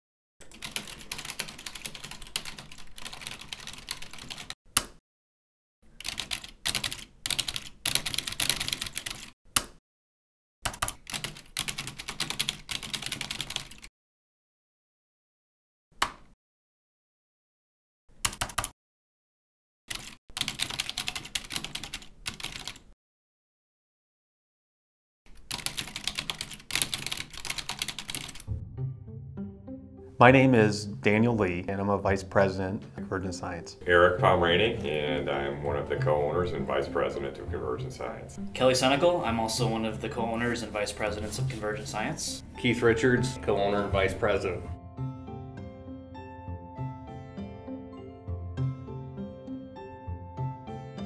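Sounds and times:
rapid typing on keyboard: 0.4s - 4.6s, 6.0s - 9.4s, 10.6s - 13.9s, 18.2s - 18.7s, 19.9s - 23.0s, 25.3s - 28.5s.

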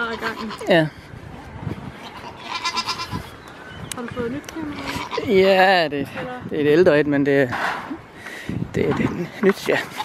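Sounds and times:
goat bleating: 0.0s - 0.9s, 2.0s - 3.3s, 4.6s - 5.5s.

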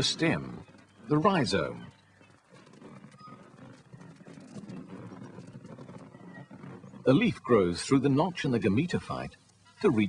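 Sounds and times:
faint background soundtrack: 0.0s - 10.0s.

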